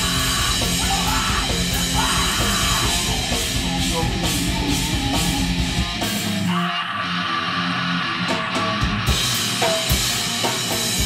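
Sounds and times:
person yelling vocals: 0:00.0 - 0:05.4
drum kit with cymbals: 0:00.0 - 0:06.6, 0:08.2 - 0:11.0
distorted electric guitar: 0:00.0 - 0:11.0.

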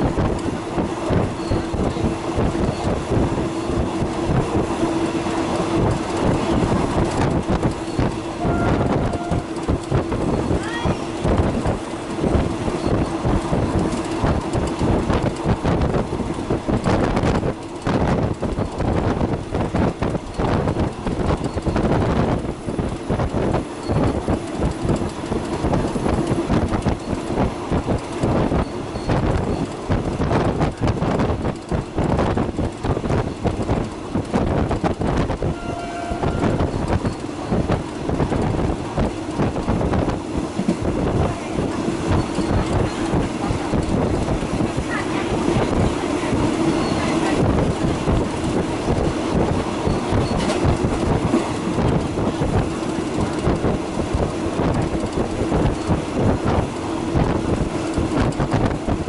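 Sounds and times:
train wheels rattling on rails: 0:00.0 - 0:59.0.

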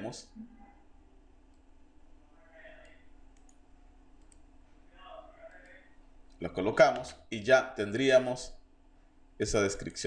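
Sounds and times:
computer mouse clicks: 0:02.8 - 0:03.6, 0:04.2 - 0:04.5.

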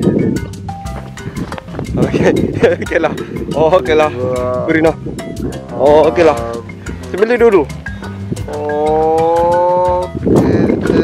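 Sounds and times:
background music with steady beat: 0:00.0 - 0:11.0
man exclaiming ohh: 0:08.5 - 0:10.1.

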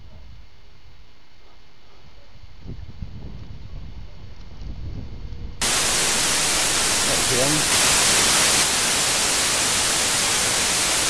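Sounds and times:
loud static hiss: 0:05.6 - 0:11.0.

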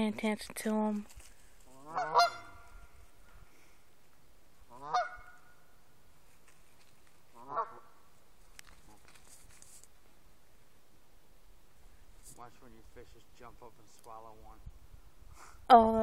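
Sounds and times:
geese honking: 0:01.7 - 0:03.0, 0:04.6 - 0:05.8, 0:07.3 - 0:08.1.

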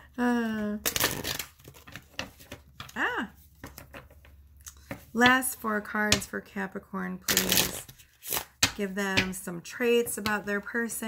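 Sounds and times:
cards being shuffled: 0:00.7 - 0:03.0, 0:07.3 - 0:09.4.

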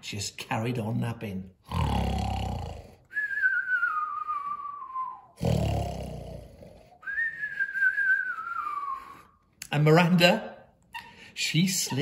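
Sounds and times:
man imitating snoring: 0:01.6 - 0:03.1, 0:05.4 - 0:07.0.

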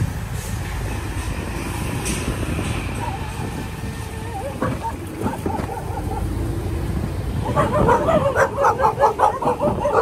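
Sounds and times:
dog barking: 0:04.3 - 0:06.4, 0:07.4 - 0:10.0.

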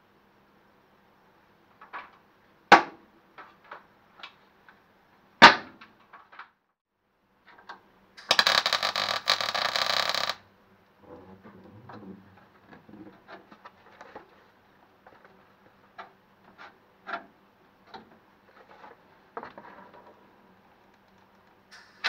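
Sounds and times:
welder arc crackle: 0:08.2 - 0:10.4.

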